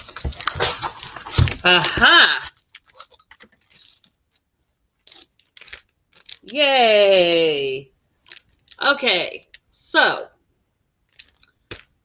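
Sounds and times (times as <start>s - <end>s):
plastic record sleeve rustling: 0.0s - 1.9s, 2.5s - 6.6s.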